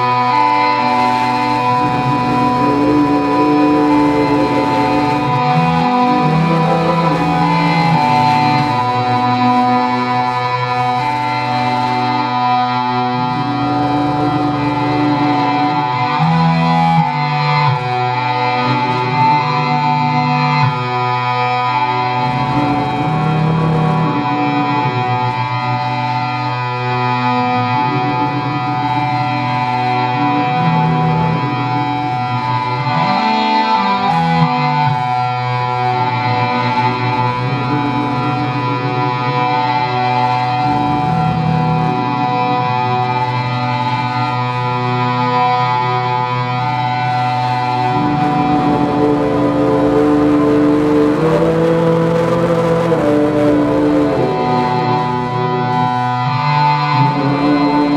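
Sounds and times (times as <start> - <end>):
gliding pitch: 0.0 - 16.3
electronic drone music: 0.0 - 57.9.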